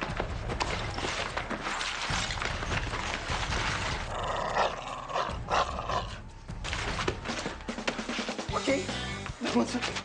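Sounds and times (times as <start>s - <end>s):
background music: 0.0s - 10.0s
dog-like growling and barking: 4.1s - 6.2s.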